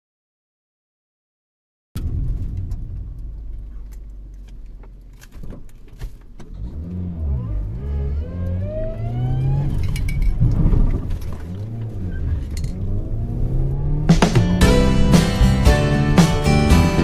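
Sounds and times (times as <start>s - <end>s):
car engine revving: 2.3s - 17.0s.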